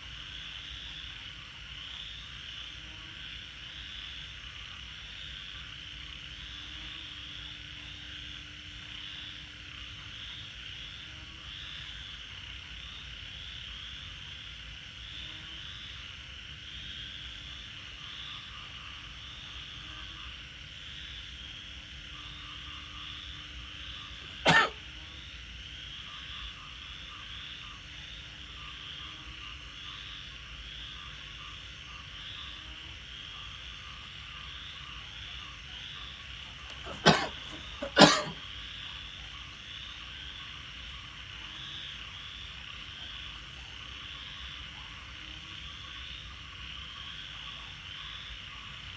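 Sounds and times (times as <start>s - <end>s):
night chorus of calling animals: 0.0s - 48.9s.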